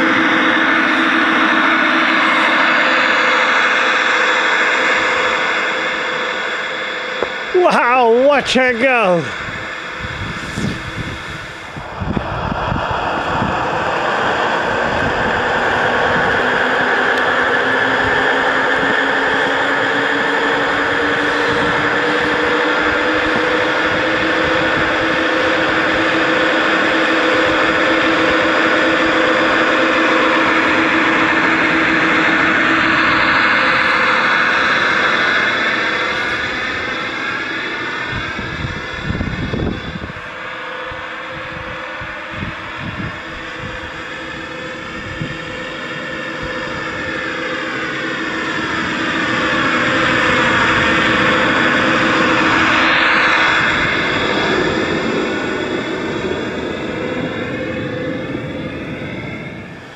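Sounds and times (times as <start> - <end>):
model diesel engine drone: 0.0 - 59.9.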